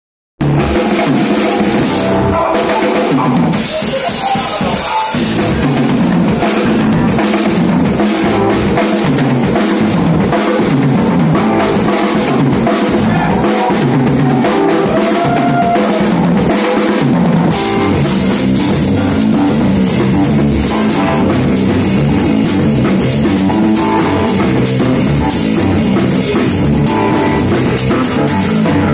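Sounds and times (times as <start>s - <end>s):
bass drum and snare beat: 0.4s - 28.9s
live rock band playing: 0.4s - 28.9s.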